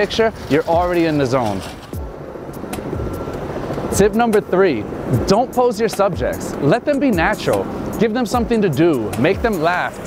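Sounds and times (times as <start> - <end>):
city street traffic rumble: 0.0 - 10.0.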